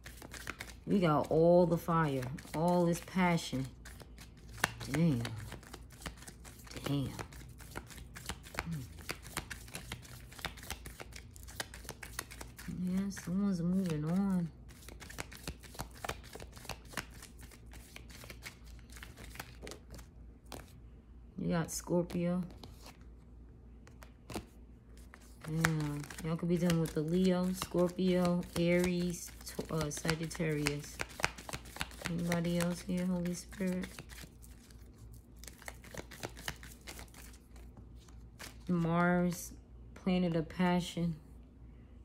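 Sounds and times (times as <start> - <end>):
cards being shuffled: 0.0 - 20.8, 21.8 - 23.2, 23.8 - 39.3.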